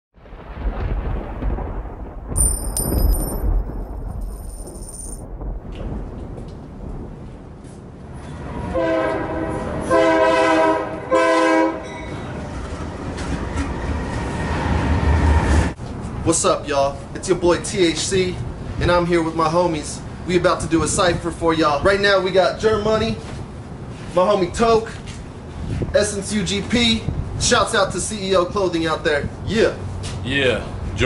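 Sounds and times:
diesel train rumbling: 6.1s - 24.3s
train horn blasts: 8.5s - 12.4s.

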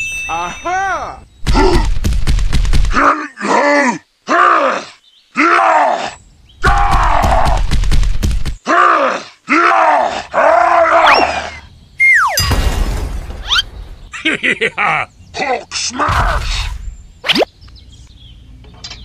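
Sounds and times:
person grunting with effort: 1.4s - 1.9s
falling whistle: 11.0s - 12.4s.

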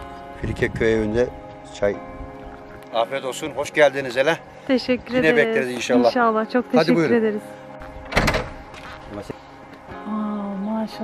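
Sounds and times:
wooden door creaking open: 8.0s - 8.6s.

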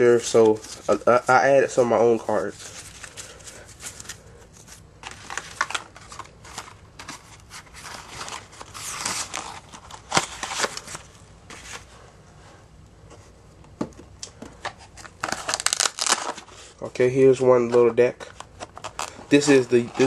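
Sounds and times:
trading cards rustling: 0.1s - 11.9s, 17.6s - 20.0s.

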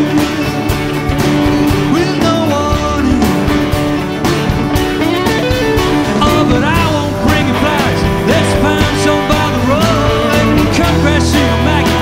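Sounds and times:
man singing: 0.0s - 4.0s, 6.0s - 12.0s
acoustic guitar strumming: 0.0s - 12.0s
live band playing folk-rock: 0.0s - 12.0s.

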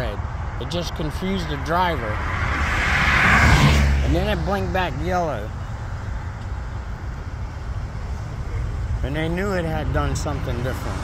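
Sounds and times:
cars driving along road: 0.0s - 11.0s.

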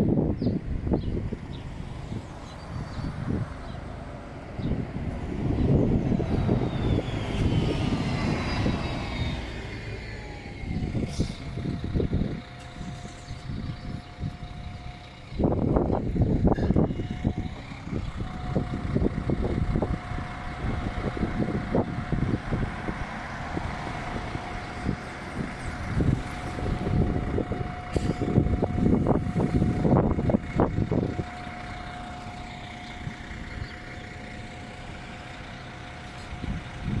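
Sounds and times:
car and bus engines: 0.0s - 37.0s.

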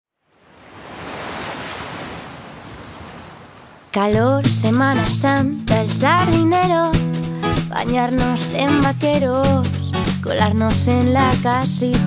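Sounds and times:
ocean wave washing: 0.2s - 4.2s.

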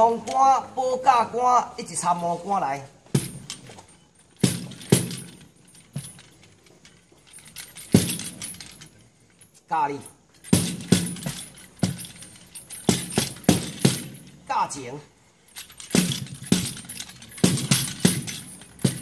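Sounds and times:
person reading aloud: 0.0s - 3.0s, 9.7s - 10.2s, 14.5s - 15.1s.

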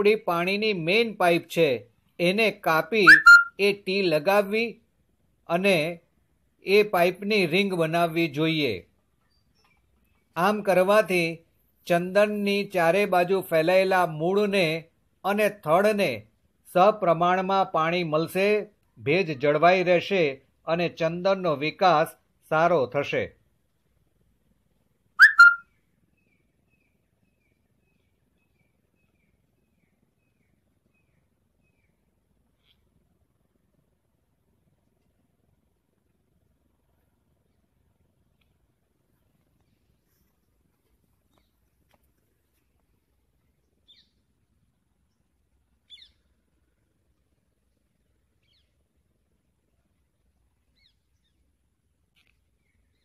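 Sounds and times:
bird calling: 3.0s - 3.6s, 25.2s - 26.9s, 45.9s - 46.3s
bird chirping: 3.0s - 3.7s, 9.0s - 10.5s, 25.2s - 33.2s, 42.5s - 46.9s, 47.6s - 49.0s, 50.6s - 53.0s.

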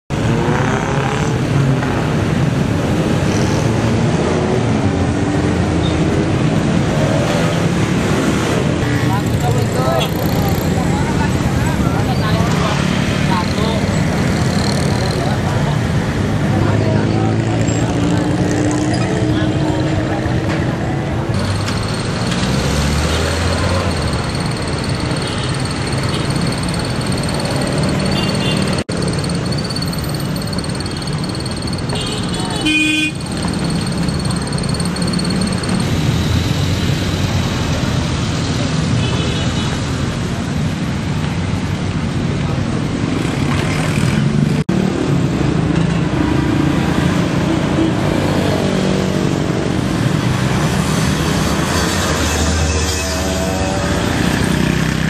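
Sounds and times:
vehicle engines passing: 0.1s - 55.0s.

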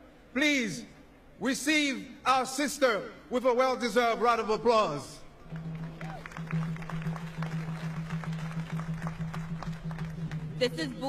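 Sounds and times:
audience clapping: 5.5s - 11.0s.

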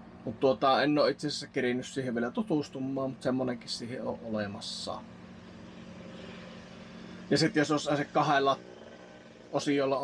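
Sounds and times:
cool box compressor humming: 2.2s - 10.0s.

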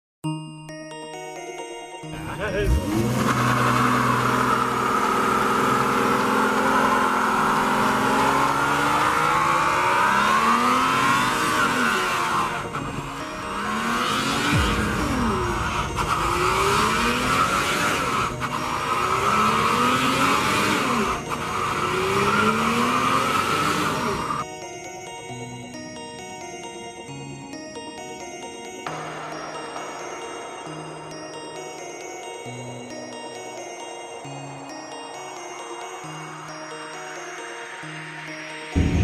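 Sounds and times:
car engine revving: 2.2s - 24.4s.

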